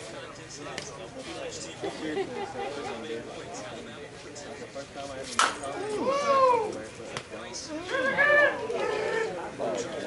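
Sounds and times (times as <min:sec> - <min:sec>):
bat cracking against ball: 0:05.4 - 0:05.7.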